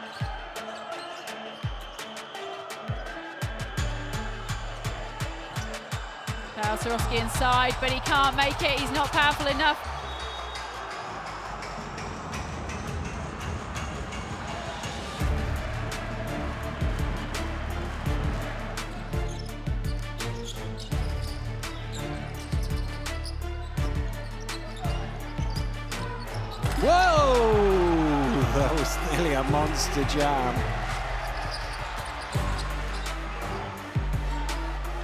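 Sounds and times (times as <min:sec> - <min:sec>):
arena crowd noise: 0:00.0 - 0:20.5, 0:24.3 - 0:35.0
music with steady bass: 0:15.2 - 0:35.0.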